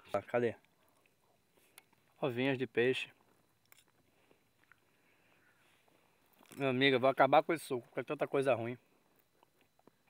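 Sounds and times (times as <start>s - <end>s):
small faint clicks: 0.1s - 2.0s, 3.2s - 4.9s.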